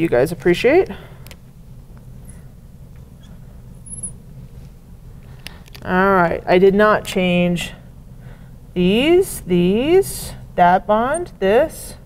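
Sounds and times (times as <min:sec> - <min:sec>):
steady low hum: 0:00.0 - 0:12.0
marker squeak on glass: 0:03.2 - 0:04.2.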